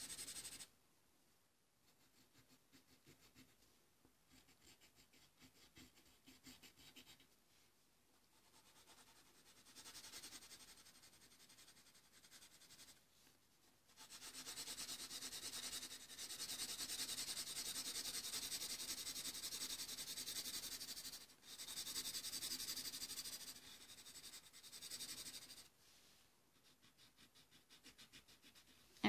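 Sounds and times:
colored pencil shading on paper: 0.0s - 0.7s, 1.8s - 3.6s, 4.3s - 7.4s, 8.3s - 13.0s, 13.9s - 29.0s.

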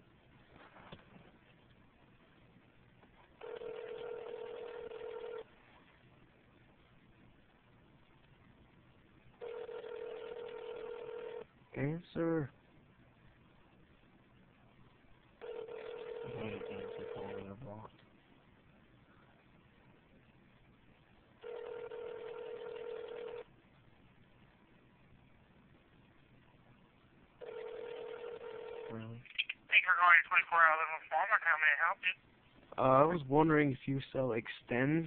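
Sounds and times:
telephone ringback tone: 3.4s - 5.5s, 9.4s - 11.4s, 15.4s - 17.4s, 21.4s - 23.5s, 27.4s - 28.9s.

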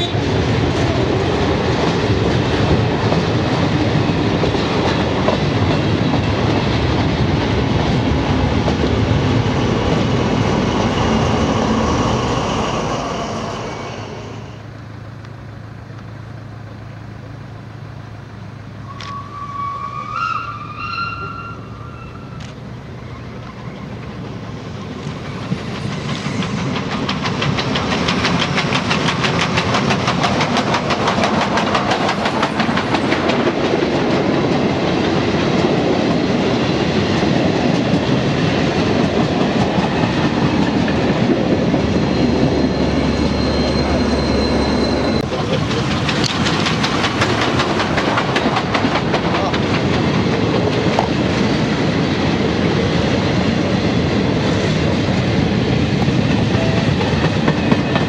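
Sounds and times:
wheels clattering on rail: 0.0s - 11.6s, 20.3s - 58.0s
diesel locomotive hum: 0.0s - 58.0s
steam locomotive exhaust beats: 17.7s - 58.0s.

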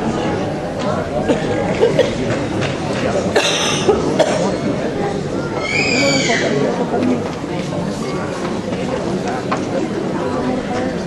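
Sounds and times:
murmur of voices: 0.0s - 11.0s
person coughing: 3.4s - 4.5s.

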